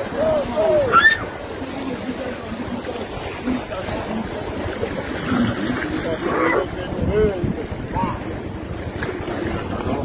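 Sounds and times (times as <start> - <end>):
small waves in shallow water: 0.0 - 10.0
wind buffeting microphone: 0.0 - 10.0
voice-like calls: 0.1 - 1.4.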